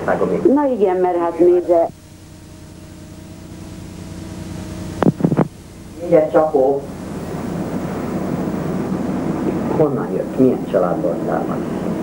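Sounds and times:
film soundtrack hiss: 0.0s - 12.0s
two-tone hum: 0.0s - 12.0s.

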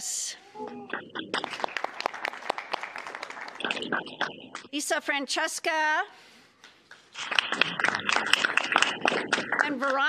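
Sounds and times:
small audience clapping: 0.6s - 4.7s, 6.6s - 10.0s.

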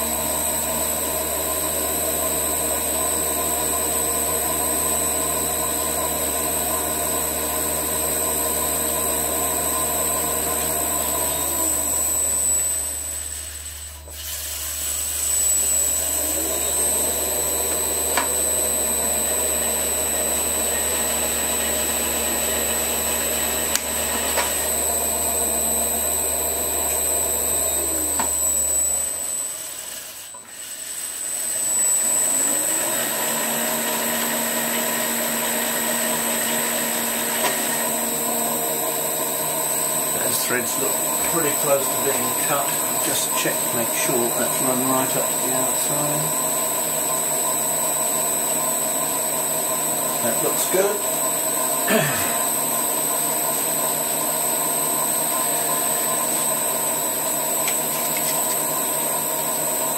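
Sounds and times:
lathe running: 0.0s - 59.9s.

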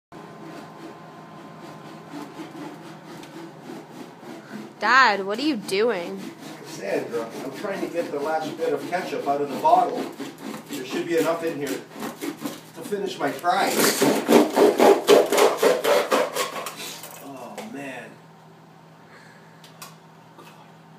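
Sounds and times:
knife sawing through plastic: 0.2s - 17.0s
plastic bottle being cut: 13.7s - 16.8s.

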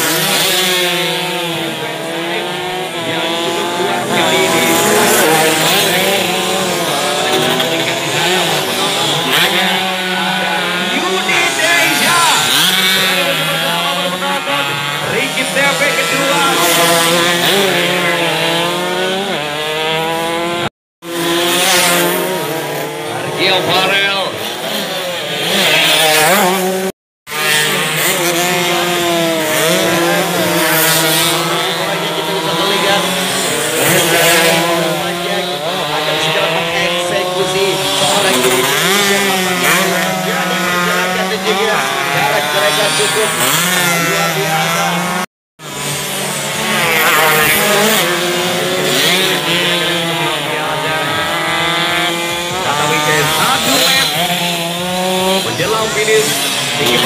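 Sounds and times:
racing motorcycles passing at full throttle: 0.0s - 57.0s.

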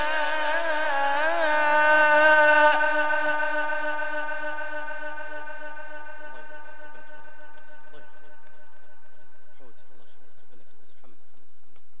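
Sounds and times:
man chanting through loudspeaker: 0.0s - 11.2s.

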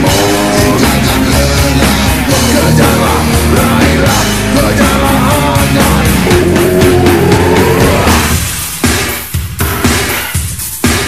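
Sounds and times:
distorted metal guitars and bass: 0.0s - 9.0s
steady drum beat: 0.0s - 11.0s.

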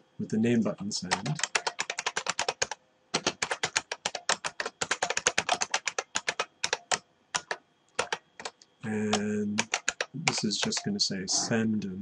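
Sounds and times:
fast typing on a keyboard: 1.1s - 10.9s.

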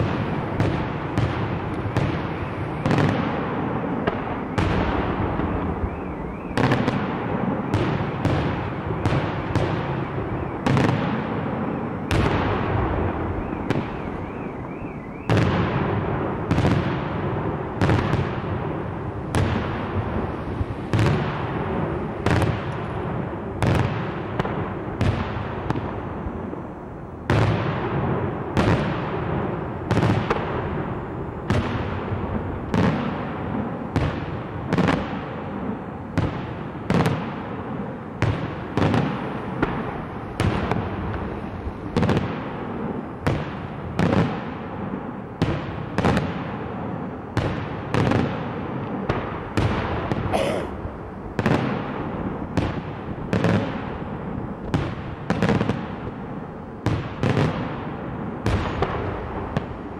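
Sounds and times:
fireworks bursting with rumble: 0.0s - 59.9s.

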